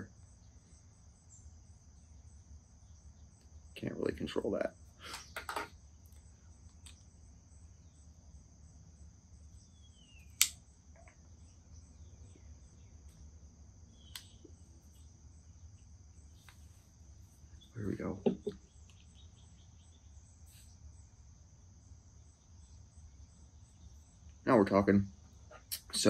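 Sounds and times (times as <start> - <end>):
insect chorus: 0.0 - 26.0.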